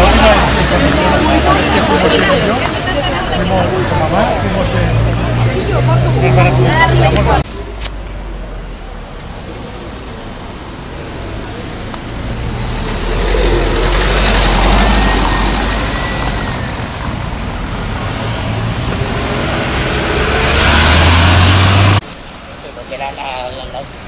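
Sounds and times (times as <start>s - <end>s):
vehicle engine rumble: 0.0s - 22.8s.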